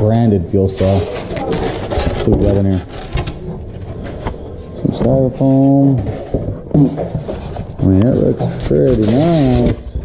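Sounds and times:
person speaking: 0.0 - 3.2, 4.2 - 9.9
styrofoam and plastic wrap rustling: 0.5 - 10.0.

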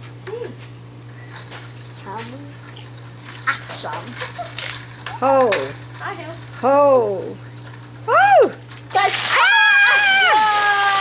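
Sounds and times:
steady low hum: 0.0 - 9.3.

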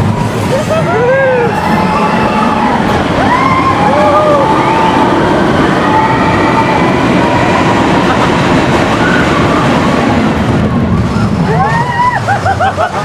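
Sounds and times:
roller coaster rumbling and rattling: 0.0 - 13.0
drawn-out squealing tones: 0.9 - 12.3.

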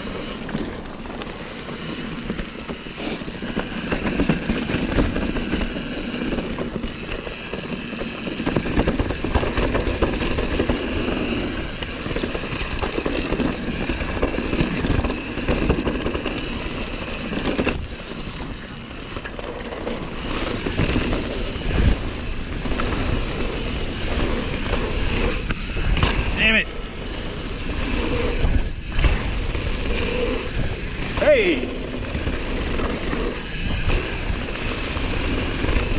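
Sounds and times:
bike rattling over bumps: 0.0 - 35.9
bike tyres on dirt: 0.0 - 35.9
wind on microphone: 20.0 - 35.9.

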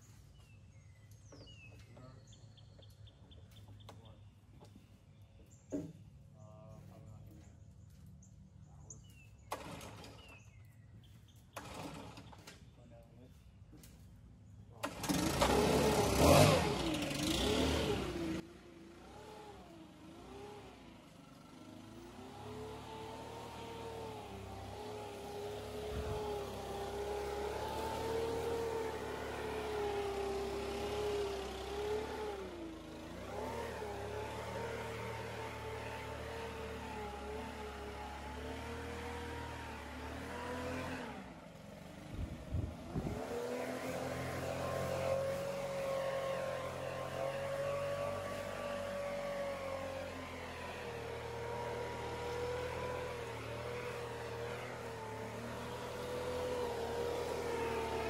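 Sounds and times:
leaf blower engine revving: 9.4 - 10.6, 11.3 - 12.7, 14.7 - 58.0.

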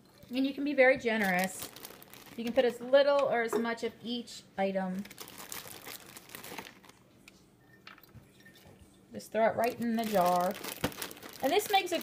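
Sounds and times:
plastic packaging crinkling: 1.1 - 3.0, 5.0 - 7.1, 9.6 - 12.0.

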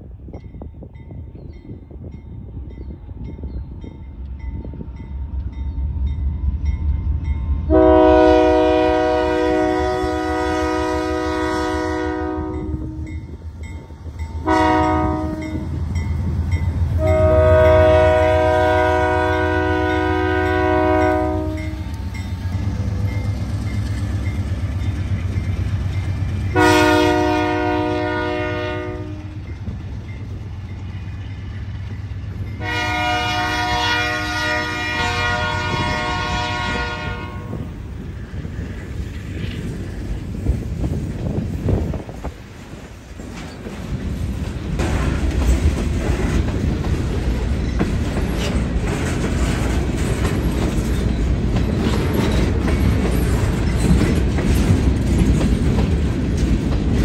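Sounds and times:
locomotive air horn blasts: 7.7 - 13.1, 14.4 - 15.7, 17.0 - 21.9, 26.5 - 29.4, 32.6 - 37.7.

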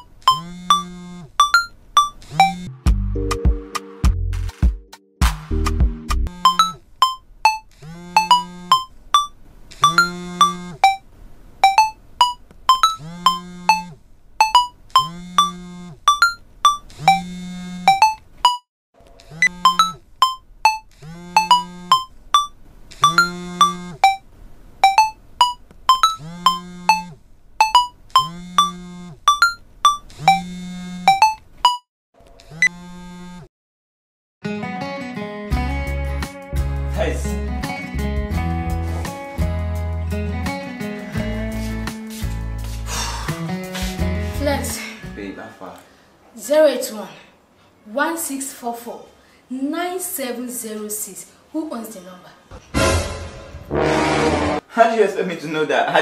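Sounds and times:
smartphone ringtone melody: 0.3 - 2.7, 6.3 - 7.6, 8.2 - 11.0, 11.6 - 17.2, 17.9 - 18.6, 19.5 - 24.2, 24.8 - 30.5, 31.1 - 31.8.

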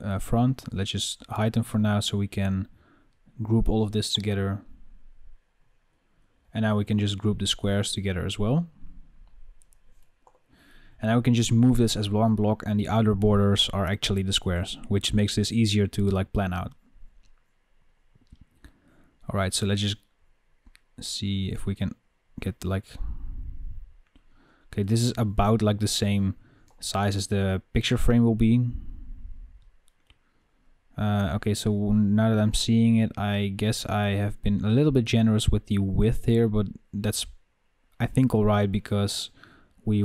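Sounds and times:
low background hiss: 0.0 - 40.0
low room hum: 0.0 - 40.0
computer mouse clicks: 9.2 - 10.5.

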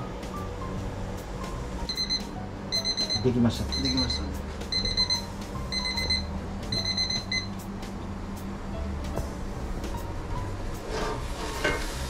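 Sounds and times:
electronic timer beeping: 1.9 - 7.5.

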